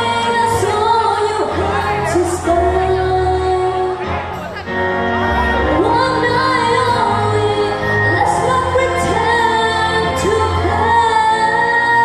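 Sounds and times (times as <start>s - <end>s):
girl singing into a microphone: 0.0s - 4.0s, 5.7s - 12.0s
guitar: 0.0s - 12.0s.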